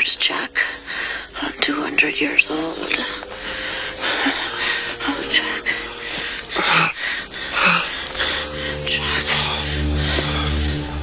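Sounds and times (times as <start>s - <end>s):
steady held tone: 0.0s - 10.1s
people whispering and breathing: 0.0s - 11.0s.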